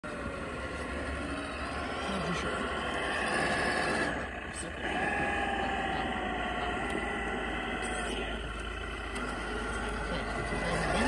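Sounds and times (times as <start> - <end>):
vehicle motor humming: 0.0 - 11.0.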